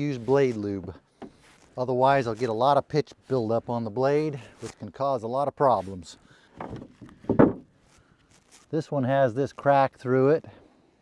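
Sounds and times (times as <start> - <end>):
hand brush sweeping sawdust: 0.0 - 0.8, 1.4 - 6.2.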